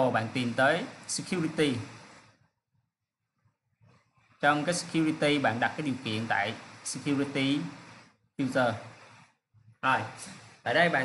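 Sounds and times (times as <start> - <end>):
person speaking: 0.0 - 2.4, 4.3 - 11.0.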